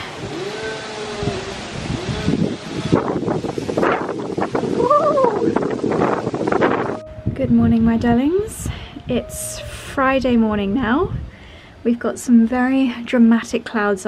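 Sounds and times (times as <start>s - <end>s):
chainsaw revving: 0.0s - 3.6s
rough noisy hiss: 0.0s - 6.9s.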